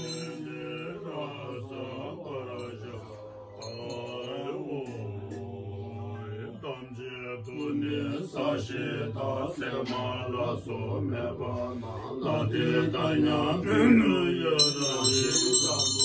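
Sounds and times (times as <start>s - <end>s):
monks chanting: 0.0s - 16.0s.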